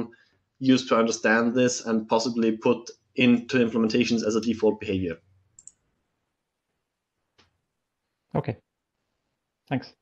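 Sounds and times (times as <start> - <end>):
spoken word: 8.4 - 8.6.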